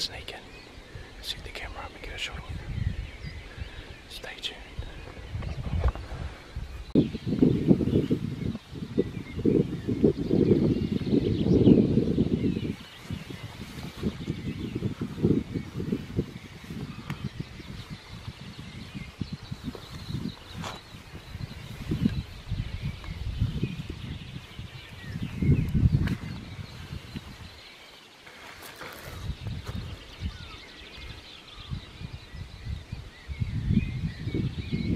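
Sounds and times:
microphone handling noise: 4.8 - 27.6, 28.3 - 30.5.

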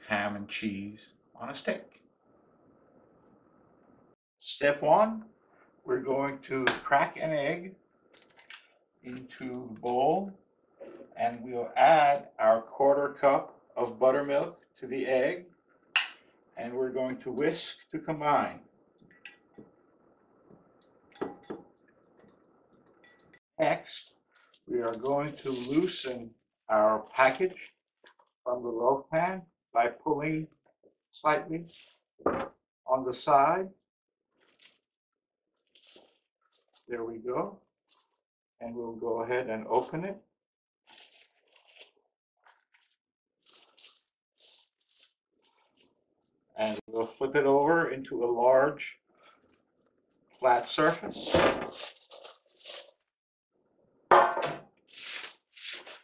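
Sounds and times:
plastic wrap crinkling: 8.1 - 8.7, 24.3 - 28.4, 31.7 - 32.2, 34.3 - 35.0, 35.6 - 36.9, 37.6 - 38.2, 40.9 - 46.4, 51.2 - 53.2, 54.8 - 56.0.

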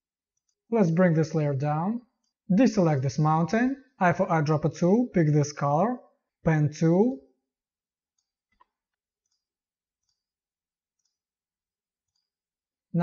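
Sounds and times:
faint ticks: 12.0 - 12.4.

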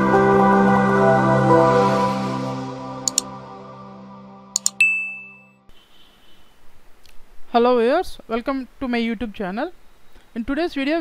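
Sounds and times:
held music chord: 0.0 - 5.2
sharp clicks: 4.6 - 4.8
bright ding: 4.6 - 5.6.

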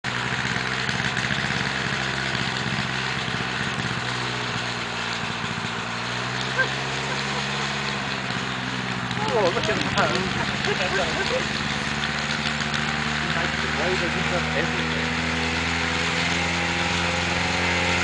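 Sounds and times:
aircraft engine and propeller running: 0.0 - 18.0
rotor spinning up: 0.1 - 18.0.

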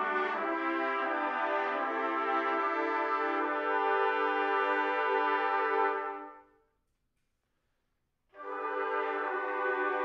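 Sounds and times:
trumpet ensemble sustained chord: 0.0 - 6.5, 8.4 - 10.0.

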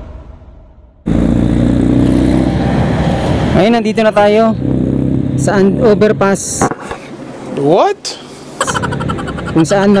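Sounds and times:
low rush of noise: 0.0 - 5.4.

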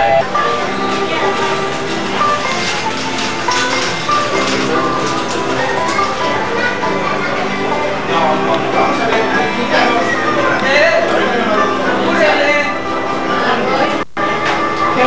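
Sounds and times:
background music with held notes: 0.0 - 15.0
faint voices: 0.0 - 15.0.

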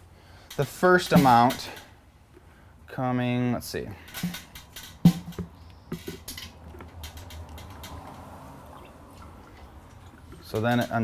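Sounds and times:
liquid running into pitcher: 6.6 - 11.0.

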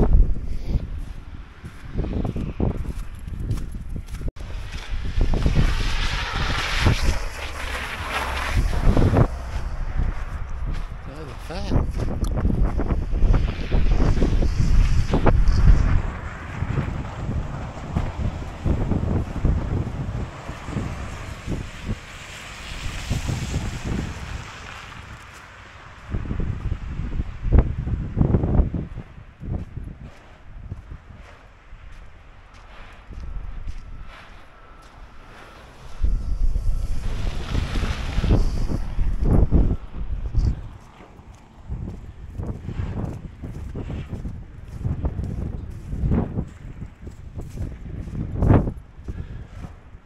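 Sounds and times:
wind buffeting microphone: 0.0 - 50.0.

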